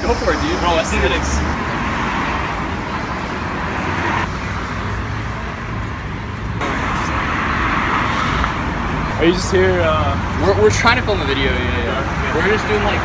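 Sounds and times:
street traffic noise: 0.0 - 13.0.

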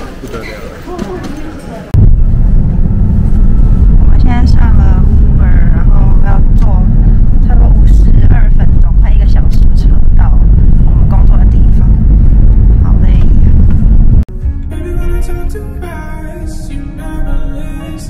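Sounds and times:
car cabin rumble: 2.0 - 14.3.

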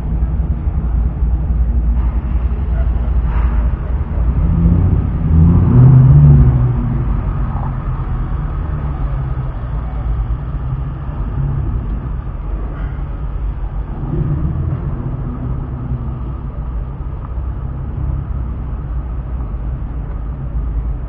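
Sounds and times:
car engine running: 0.0 - 21.0.

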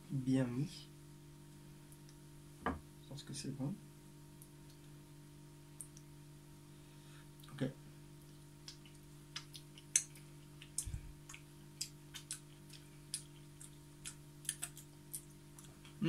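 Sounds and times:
low room hum: 0.0 - 16.0
mouth clicks and smacks: 8.6 - 16.0.

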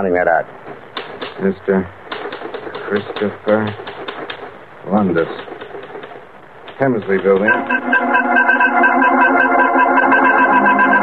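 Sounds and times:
organ chord with fast pulse: 7.5 - 11.0.

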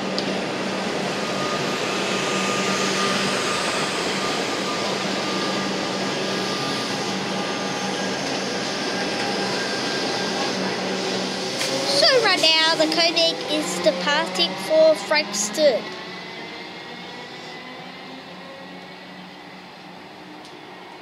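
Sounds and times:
faint train whine: 0.0 - 21.0
wheels on rail rushing: 0.0 - 21.0.

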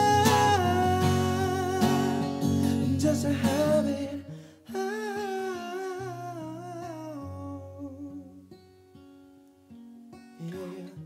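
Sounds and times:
man singing wordless note: 0.0 - 8.4, 10.4 - 11.0
acoustic guitar picking: 0.0 - 11.0.

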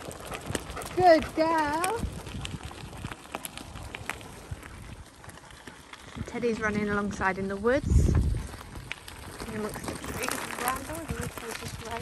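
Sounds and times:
bike tyres crunching gravel: 0.0 - 12.0
dog paws running on gravel: 0.0 - 12.0.

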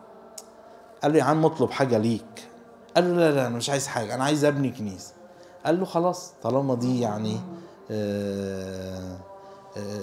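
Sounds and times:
man's drawn-out hesitation sound: 6.8 - 7.7.

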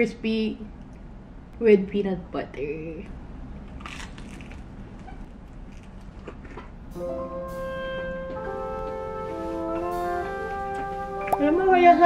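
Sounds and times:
crunching fried chicken: 3.6 - 6.7.

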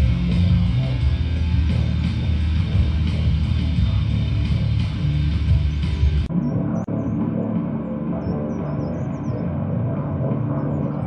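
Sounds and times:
birds chirping: 0.0 - 11.0
guitar music: 0.0 - 11.0.

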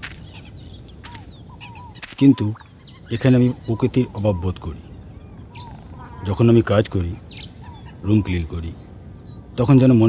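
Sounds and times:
small bird chirps: 0.0 - 6.4.

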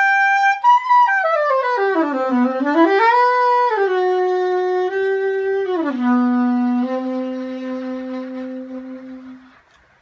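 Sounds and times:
soprano saxophone long note: 0.0 - 9.6.

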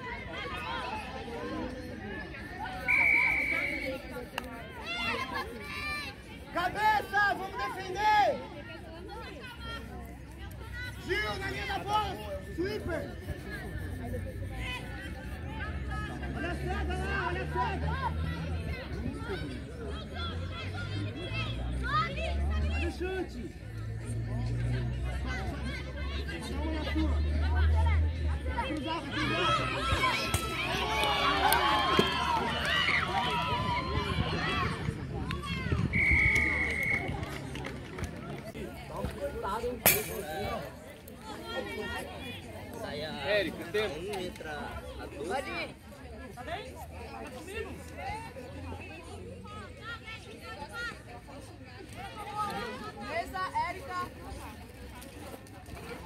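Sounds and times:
faint voices calling and chattering: 0.0 - 56.0
referee's whistle: 2.7 - 4.2, 35.9 - 37.2.

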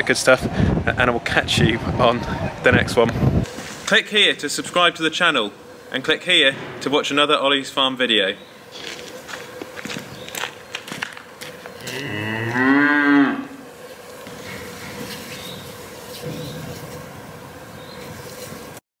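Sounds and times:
cow mooing: 11.8 - 13.6.

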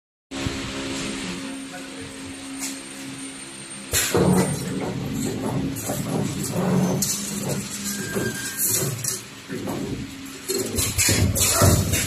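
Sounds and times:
machinery hum: 0.3 - 12.0.

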